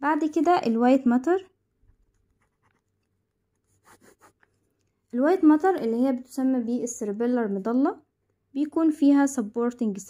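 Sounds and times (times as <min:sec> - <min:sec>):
pen writing on paper: 0:02.4 - 0:04.6.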